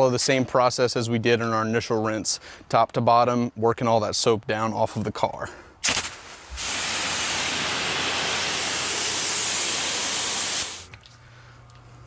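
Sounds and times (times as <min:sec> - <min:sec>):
pressure washer spray hissing: 0:05.8 - 0:10.9.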